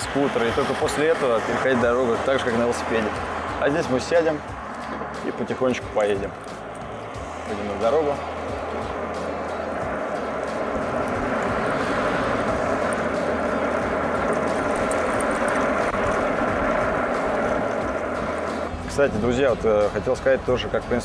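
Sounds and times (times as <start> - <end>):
scooter tyre noise: 0.0 - 18.7
wind on microphone: 0.0 - 18.7.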